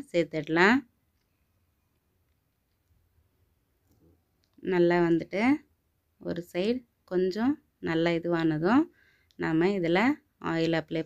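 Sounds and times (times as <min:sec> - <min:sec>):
person speaking: 0:04.5 - 0:11.0.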